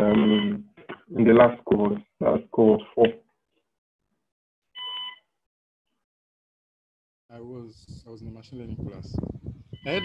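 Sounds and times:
short electronic beep: 0:09.8 - 0:10.0.

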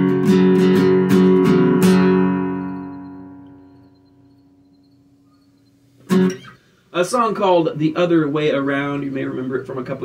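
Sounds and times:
acoustic guitar chord ringing: 0:00.0 - 0:06.7.

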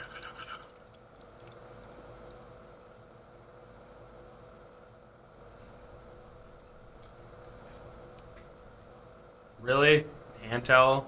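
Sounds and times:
shower water running: 0:00.0 - 0:03.0
low steady hum: 0:00.0 - 0:11.0.

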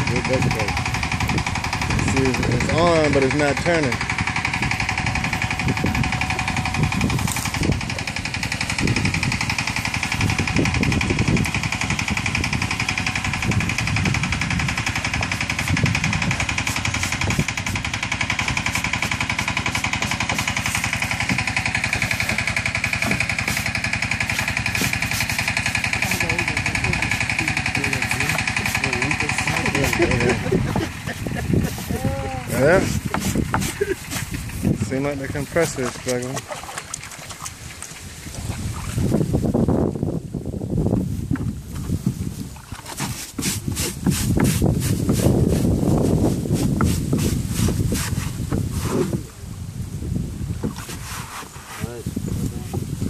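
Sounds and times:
motor buzzing with high whine: 0:00.0 - 0:35.6.

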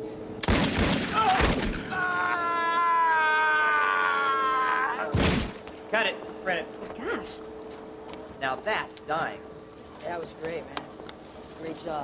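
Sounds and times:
gunshots: 0:00.4 - 0:01.8.

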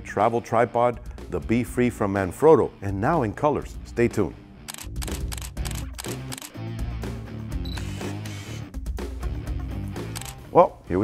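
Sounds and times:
camera shutter clicks: 0:04.7 - 0:06.6, 0:07.7 - 0:08.6, 0:10.1 - 0:10.4.

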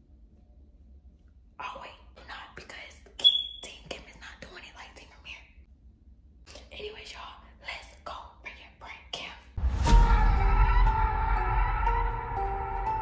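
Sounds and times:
person whispering: 0:01.6 - 0:05.6, 0:06.5 - 0:09.6
eerie music: 0:09.6 - 0:13.0.

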